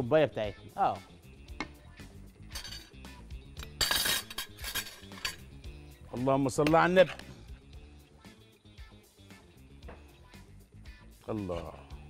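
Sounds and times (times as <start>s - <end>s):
faint background music: 0.0s - 12.0s
metal utensils clinking on pots: 2.5s - 3.0s, 3.6s - 5.6s.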